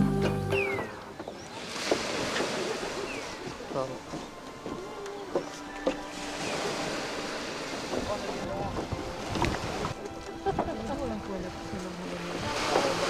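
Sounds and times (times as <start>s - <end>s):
waves washing on sand: 1.3s - 4.6s, 5.6s - 13.0s
wind buffeting microphone: 7.8s - 13.0s.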